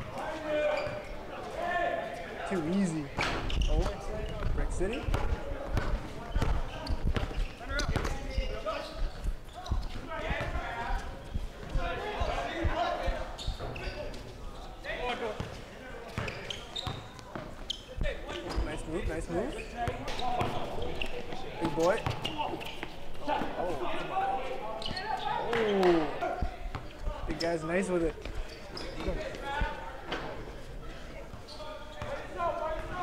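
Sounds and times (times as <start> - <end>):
voices of people: 0.0 - 33.0
basketball bouncing on hard court: 4.4 - 8.6.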